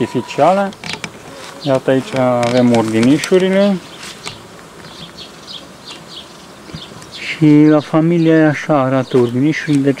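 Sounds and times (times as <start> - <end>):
honey bees buzzing: 0.0 - 10.0.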